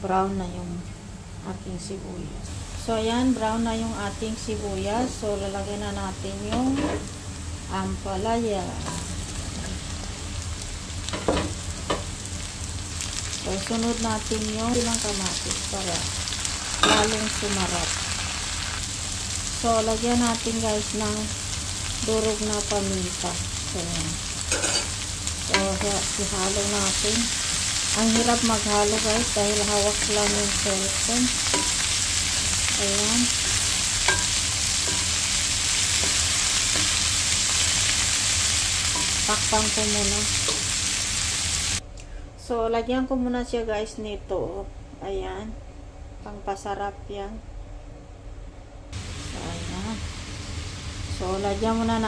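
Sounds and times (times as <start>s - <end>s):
vegetables sizzling in hot oil: 2.5s - 41.8s, 49.0s - 52.0s.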